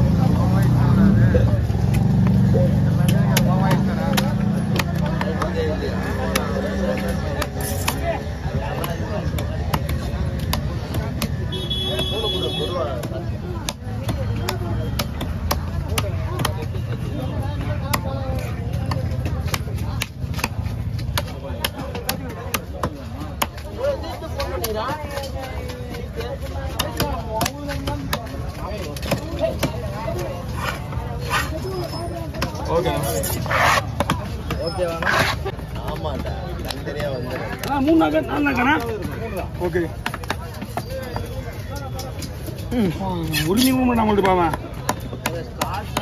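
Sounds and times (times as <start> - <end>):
knife chopping on wooden block: 3.0 - 12.1, 12.9 - 16.8, 17.8 - 23.6, 33.1 - 35.5.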